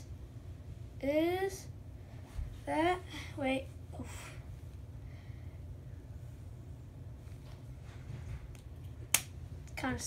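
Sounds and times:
sharp snap: 0:09.1 - 0:09.8.

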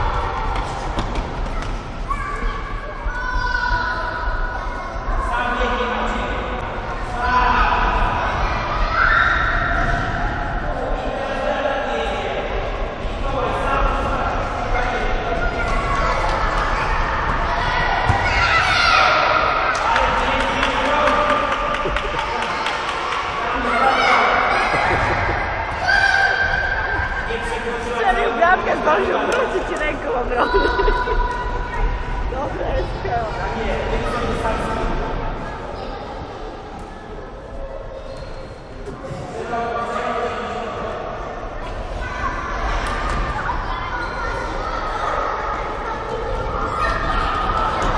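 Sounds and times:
children shouting: 0:15.5 - 0:20.4, 0:22.1 - 0:27.2.

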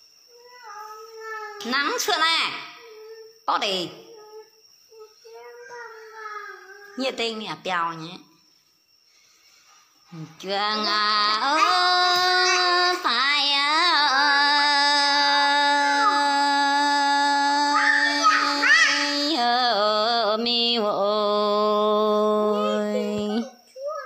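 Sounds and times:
woman singing unaccompanied: 0:10.2 - 0:23.6.

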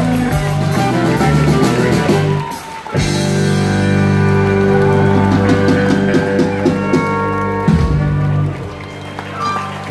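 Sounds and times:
live country band playing: 0:00.0 - 0:09.9.

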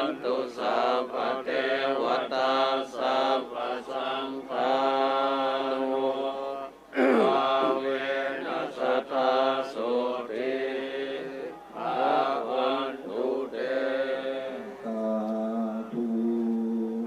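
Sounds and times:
monks chanting in unison: 0:00.0 - 0:17.0.

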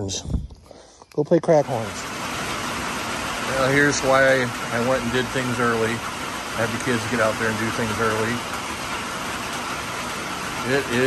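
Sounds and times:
man talking: 0:00.0 - 0:00.4, 0:01.1 - 0:02.0, 0:03.4 - 0:08.5, 0:10.6 - 0:11.0
steady rain falling: 0:01.6 - 0:11.0.

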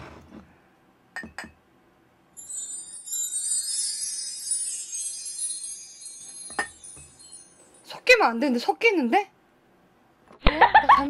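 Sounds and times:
light clinks: 0:02.4 - 0:07.9
high shimmering tinkle: 0:02.4 - 0:08.3.

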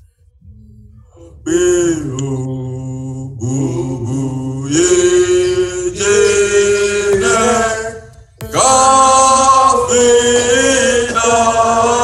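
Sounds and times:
man singing a chant: 0:01.0 - 0:12.0.

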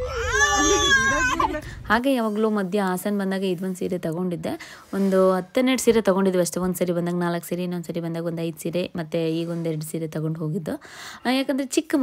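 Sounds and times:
baby crying: 0:00.0 - 0:01.7.

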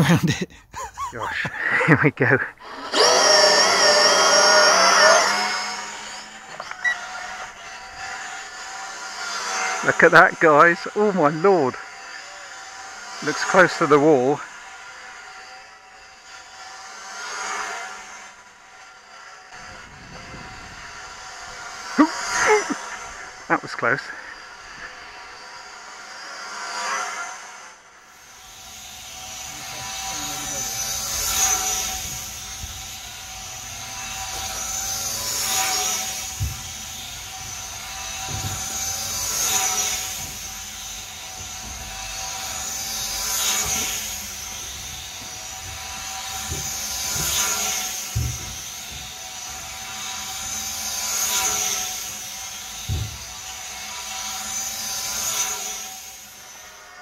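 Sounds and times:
model plane electric motors whining: 0:01.3 - 0:57.0.

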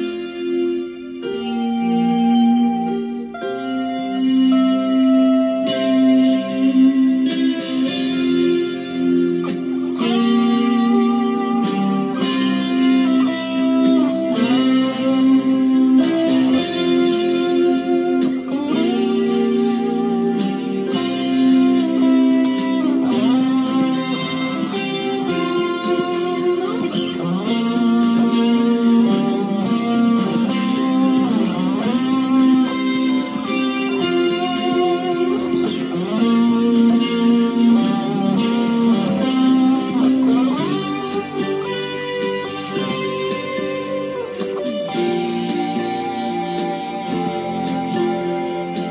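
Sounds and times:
electric guitar melody with bends: 0:00.0 - 0:48.9.

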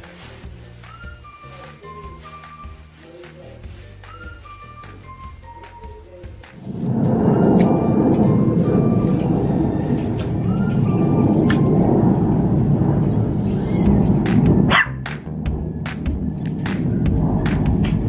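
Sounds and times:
loud steady rushing noise: 0:06.5 - 0:18.0
small dog barking and yelping: 0:14.7 - 0:15.0.

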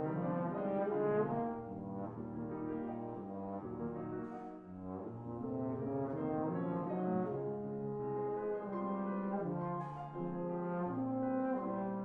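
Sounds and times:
bass trombone playing low notes: 0:00.0 - 0:12.0
piano accompaniment: 0:00.0 - 0:12.0.

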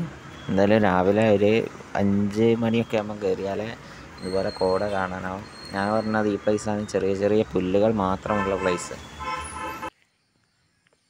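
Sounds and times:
vehicle horn steady tone: 0:08.2 - 0:09.9.

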